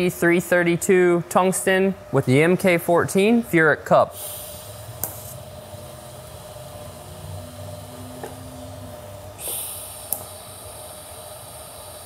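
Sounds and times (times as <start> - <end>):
welding arc hum and hiss: 0.0 - 12.0.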